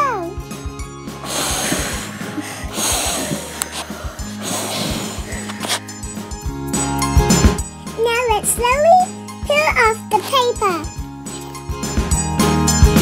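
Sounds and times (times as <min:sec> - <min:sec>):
background music: 0:00.0 - 0:13.0
child blowing breaths: 0:01.1 - 0:06.4.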